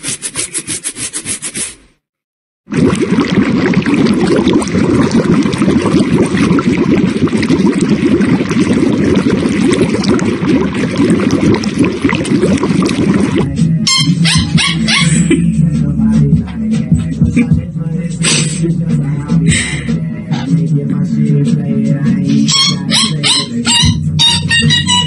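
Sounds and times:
dog splashing water in bowl: 2.7 - 13.5
music with a beat: 13.4 - 25.0.

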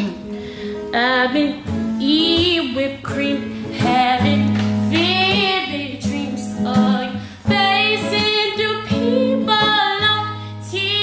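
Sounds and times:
strummed acoustic guitar: 0.0 - 11.0
woman singing soul ballad: 0.8 - 11.0.

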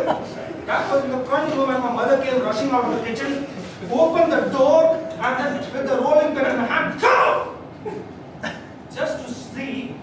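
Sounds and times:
man shouting: 6.8 - 7.6.

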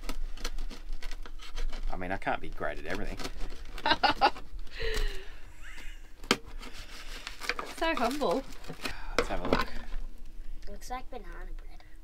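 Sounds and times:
person laughing: 3.8 - 6.2.

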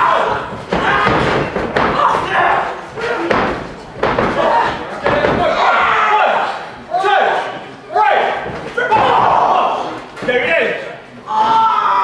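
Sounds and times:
people shouting: 0.0 - 10.0, 11.3 - 12.0
heavy thuds on a wrestling ring: 0.1 - 5.6.

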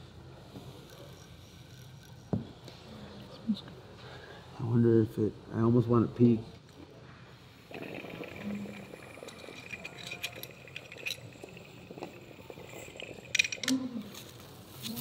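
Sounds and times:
water pipe bubbling: 7.7 - 13.6.

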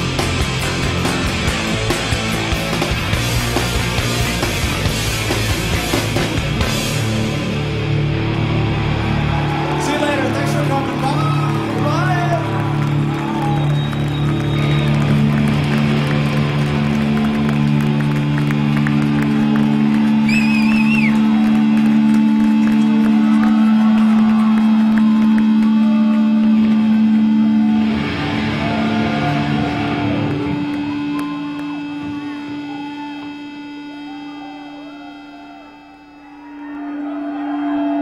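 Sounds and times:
electric guitars droning: 0.0 - 38.0.

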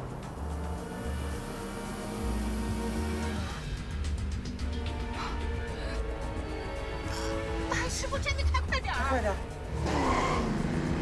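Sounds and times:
tense background music: 0.0 - 11.0.

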